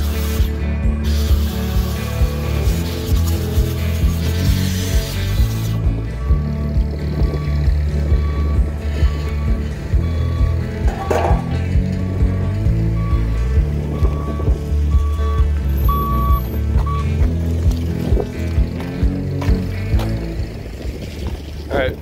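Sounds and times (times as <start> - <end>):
music with steady bass beat: 0.0 - 21.1.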